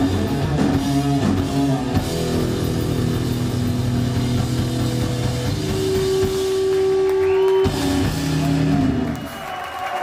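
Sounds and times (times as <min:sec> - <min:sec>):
distorted guitar and bass drone: 0:00.0 - 0:09.1.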